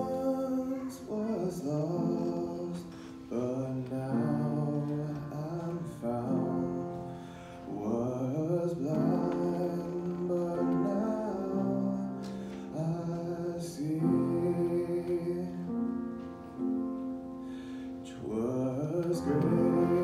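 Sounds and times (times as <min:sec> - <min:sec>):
young man singing solo: 0:00.0 - 0:15.9, 0:18.0 - 0:20.0.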